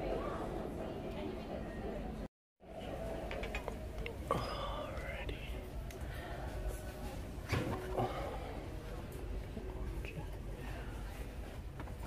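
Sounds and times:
low background hum: 0.0 - 12.0
soft indistinct voices: 0.0 - 12.0.

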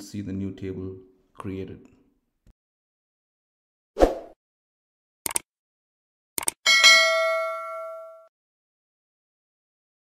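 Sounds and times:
notification bell ding: 6.7 - 8.3.

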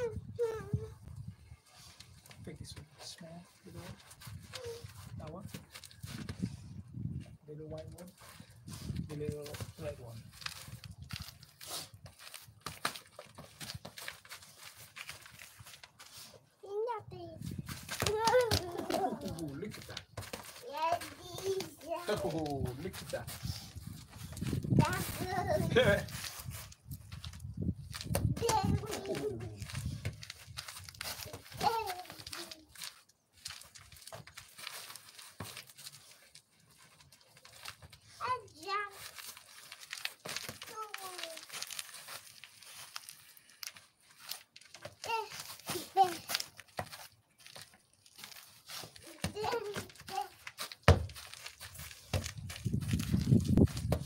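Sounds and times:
toddler babbling: 0.0 - 1.0, 4.6 - 4.9, 18.1 - 19.4, 20.6 - 22.2, 28.4 - 29.5, 31.6 - 32.7, 49.1 - 50.4.

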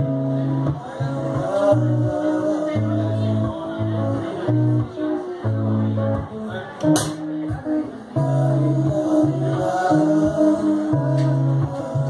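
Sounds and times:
electric guitar: 0.0 - 12.0
man singing held notes: 8.1 - 12.0.

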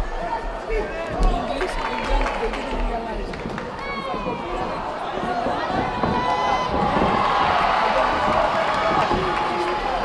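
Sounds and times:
arena crowd chatter: 0.0 - 10.0
people talking close by: 0.0 - 10.0.

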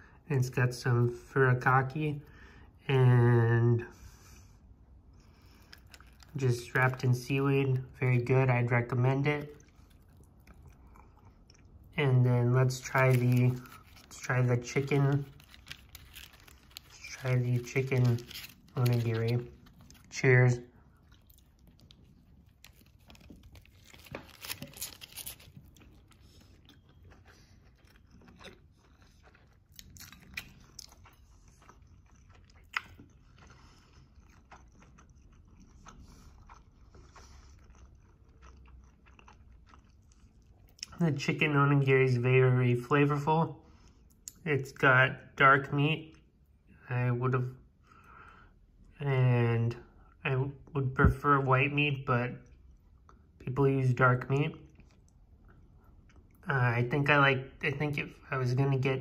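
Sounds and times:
faint chewing: 4.0 - 8.0, 8.9 - 12.0, 12.7 - 41.0, 54.5 - 56.5.

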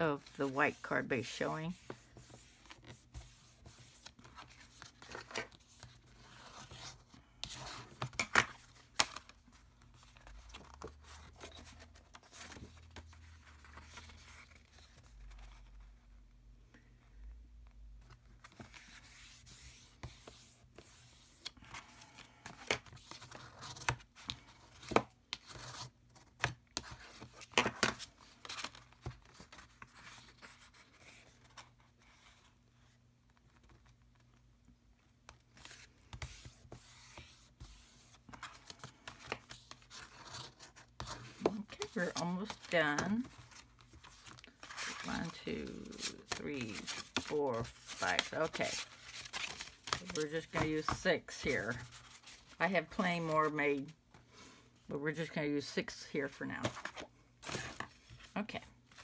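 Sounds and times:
paper rustling and crackling: 35.2 - 53.4.

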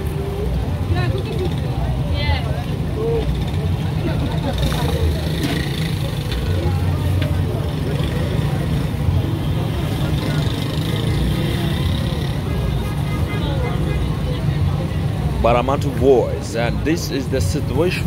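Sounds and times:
low street rumble: 0.0 - 18.0
people talking: 0.0 - 18.0.

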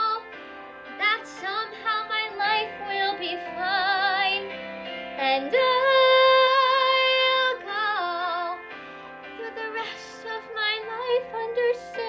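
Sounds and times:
woman singing: 0.0 - 0.3, 1.0 - 4.5, 5.2 - 8.7, 9.3 - 12.0.

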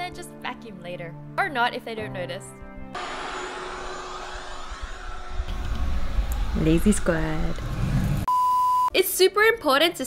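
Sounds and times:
vacuum cleaner humming: 3.0 - 8.2.

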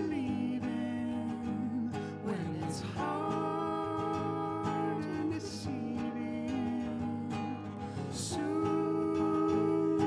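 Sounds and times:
acoustic guitar strumming: 0.0 - 10.0
man and woman singing in harmony: 0.0 - 10.0.

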